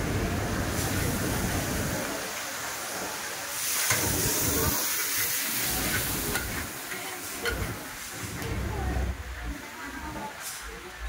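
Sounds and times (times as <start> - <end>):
food sizzling in a wok: 0.1 - 11.0.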